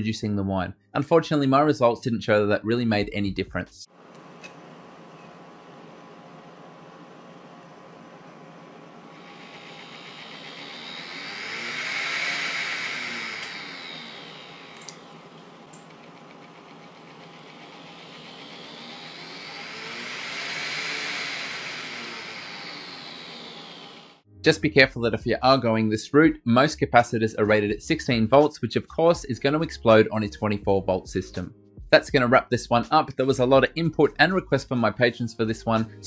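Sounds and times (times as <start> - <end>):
small cooling fan humming and whining: 3.9 - 24.2.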